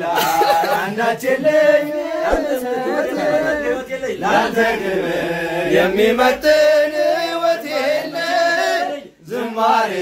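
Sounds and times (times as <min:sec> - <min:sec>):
men chanting a song: 0:00.0 - 0:10.0.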